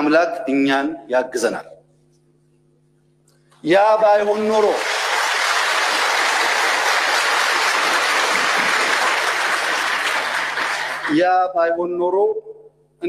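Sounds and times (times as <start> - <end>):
crowd applauding: 4.2 - 11.2.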